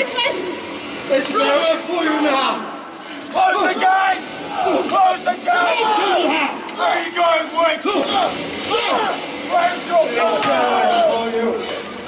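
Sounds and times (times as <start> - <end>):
voices shouting battle cries: 1.1 - 2.2, 3.3 - 11.4.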